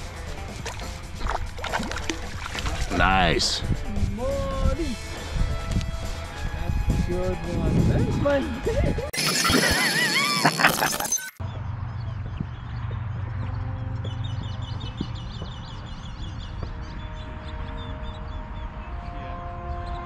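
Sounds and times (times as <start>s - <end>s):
wind rumbling on microphone: 0.4s - 9.1s, 11.8s - 20.0s.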